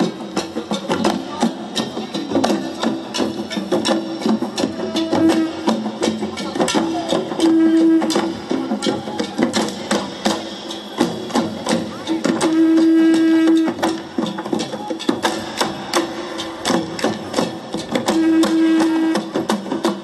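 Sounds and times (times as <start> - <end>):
hand drums in rapid rhythm: 0.0 - 20.0.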